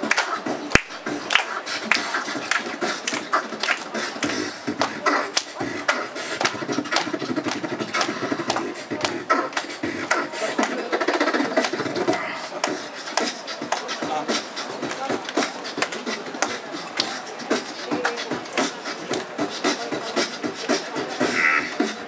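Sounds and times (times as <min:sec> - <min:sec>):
beatboxing drum hits: 0:00.0 - 0:22.0
continuous vocal line: 0:00.0 - 0:22.0.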